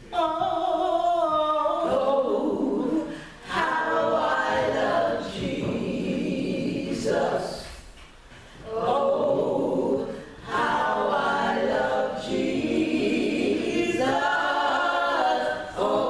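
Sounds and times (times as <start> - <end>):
women singing a cappella hymn: 0.0 - 16.0.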